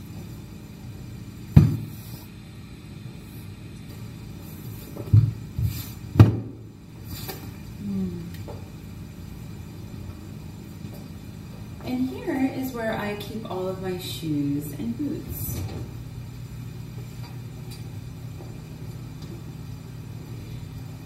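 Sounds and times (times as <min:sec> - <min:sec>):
furniture knocks and thumps: 0:01.5 - 0:01.9, 0:05.0 - 0:06.6.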